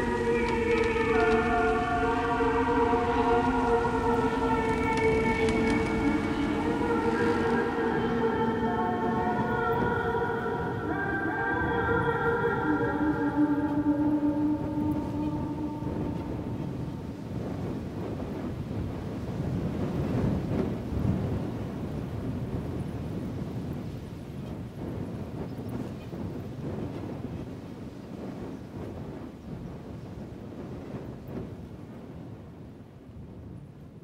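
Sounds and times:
held music notes: 0:00.0 - 0:17.3
low rumbling noise: 0:00.0 - 0:23.8.

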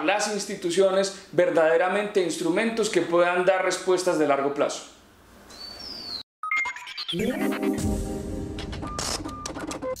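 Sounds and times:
held music chord: 0:07.2 - 0:08.6.

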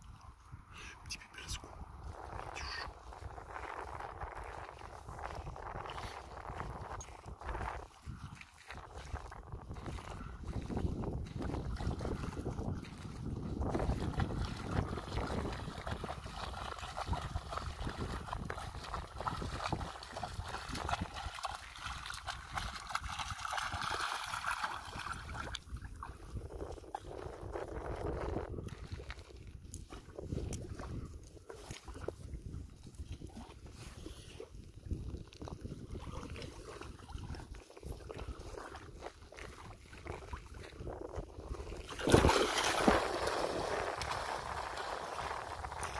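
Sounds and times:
seawater sloshing and splashing: 0:02.0 - 0:45.9.

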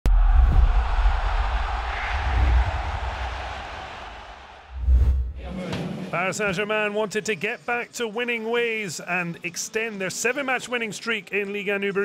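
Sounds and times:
deep bass rumble: 0:00.0 - 0:05.5
whooshing noise: 0:00.1 - 0:05.5.

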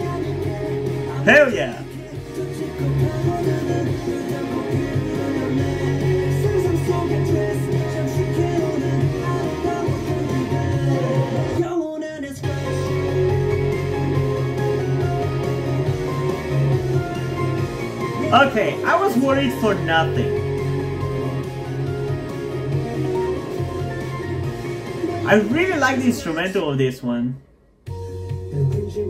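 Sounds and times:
man singing: 0:00.0 - 0:13.4, 0:28.5 - 0:29.0
rock song: 0:00.0 - 0:27.1
electric guitar: 0:02.0 - 0:11.6, 0:12.4 - 0:18.8.

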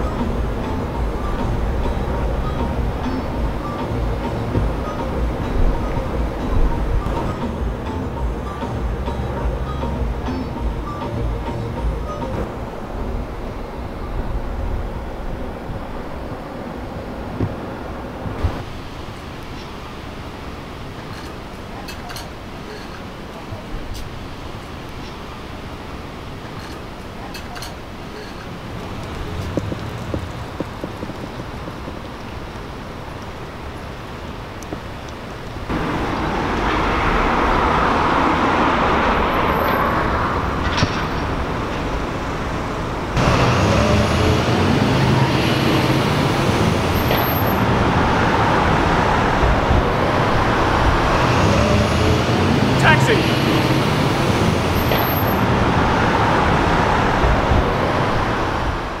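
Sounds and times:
road traffic with cars passing: 0:00.0 - 0:59.0.

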